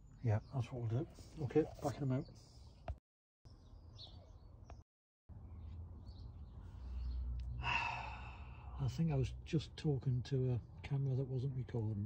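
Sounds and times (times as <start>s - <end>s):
bird chirps: 3.5s - 4.8s
man sighing: 7.6s - 8.8s.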